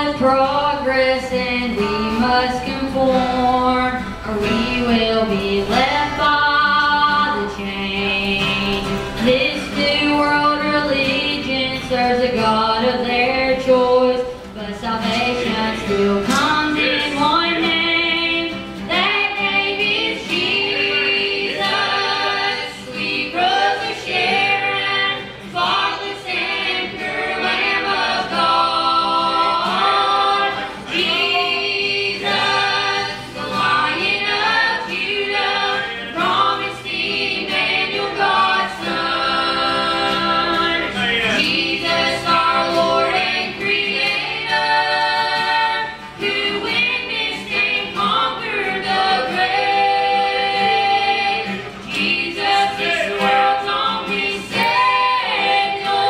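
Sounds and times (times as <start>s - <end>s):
acoustic guitar strumming: 0.0s - 56.0s
gospel singing in harmony: 0.0s - 56.0s.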